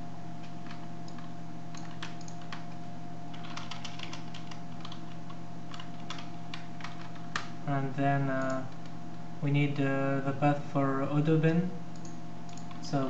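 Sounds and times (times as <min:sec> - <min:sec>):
low electrical hum: 0:00.0 - 0:13.0
keyboard keystrokes clicking: 0:00.4 - 0:02.7, 0:03.3 - 0:07.5, 0:11.9 - 0:12.8.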